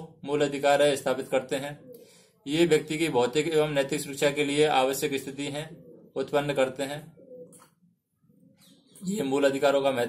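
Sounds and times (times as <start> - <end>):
low bird calls: 1.3 - 10.0.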